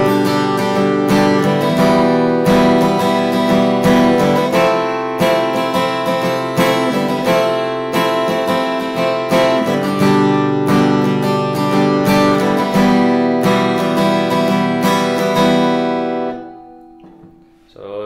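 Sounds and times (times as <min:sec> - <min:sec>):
acoustic guitar strumming chords: 0:00.0 - 0:18.0.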